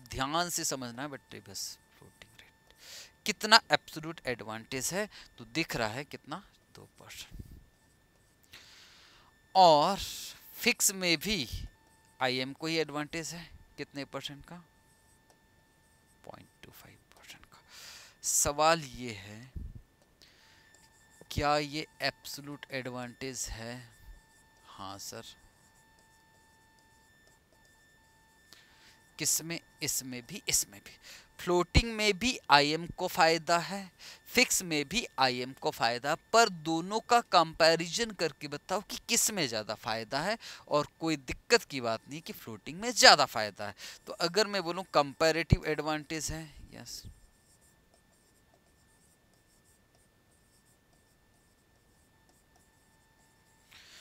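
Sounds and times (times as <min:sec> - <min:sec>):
faint high electronic whine: 0:00.0 - 0:54.0
pen scratching on a board: 0:25.4 - 0:28.0, 0:47.1 - 0:53.7.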